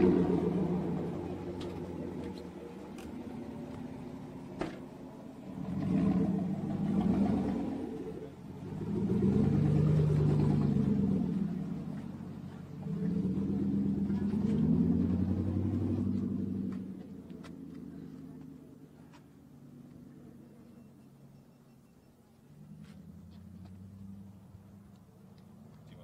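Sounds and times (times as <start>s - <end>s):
truck engine revving: 0.0s - 18.7s
car door shutting: 4.6s - 4.9s.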